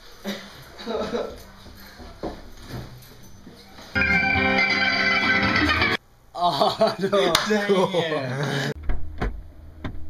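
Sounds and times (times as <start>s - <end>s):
faint knocks and rustles: 0.6s - 4.0s
loud guitar chord ringing: 4.0s - 6.0s.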